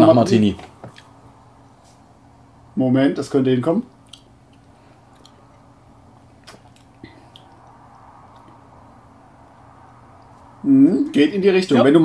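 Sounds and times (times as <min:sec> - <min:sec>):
mouth clicks and smacks: 0:04.0 - 0:08.6.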